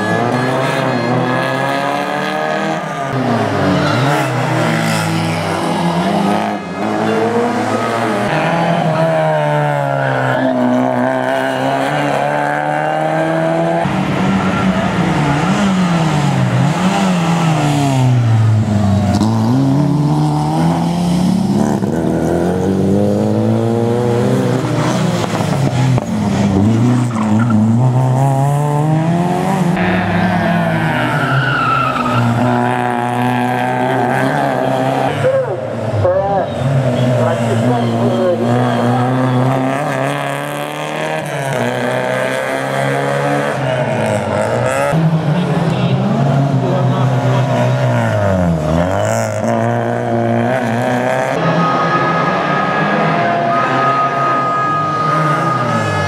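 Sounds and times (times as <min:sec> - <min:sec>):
rally car engines revving: 0:00.0 - 0:56.0
tyres squealing: 0:29.8 - 0:32.7.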